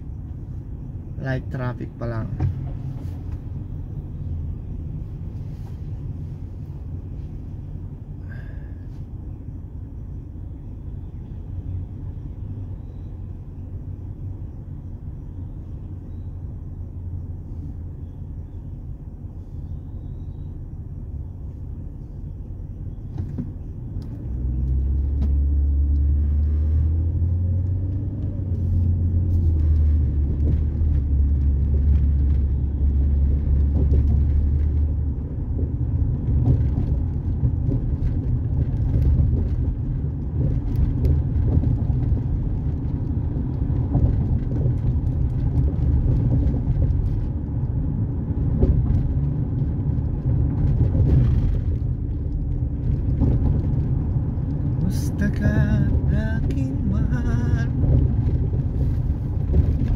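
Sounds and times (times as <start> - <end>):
car engine and road rumble: 0.0 - 59.9.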